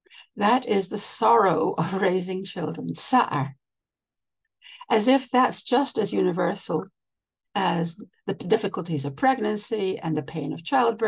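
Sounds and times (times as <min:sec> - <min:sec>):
woman lecturing: 0:00.4 - 0:03.5, 0:04.7 - 0:06.8, 0:07.6 - 0:11.0.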